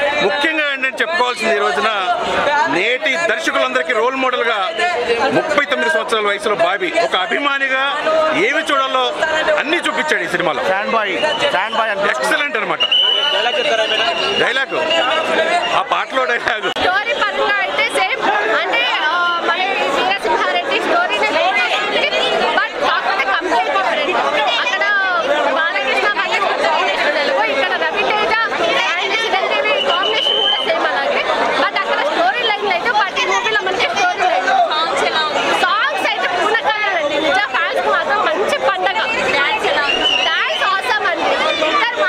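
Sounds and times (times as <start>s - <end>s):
people chattering: 0.0s - 42.0s.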